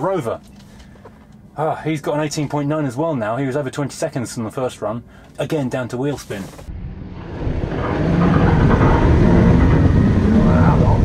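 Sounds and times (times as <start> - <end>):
car engine at high revs: 6.7 - 11.0.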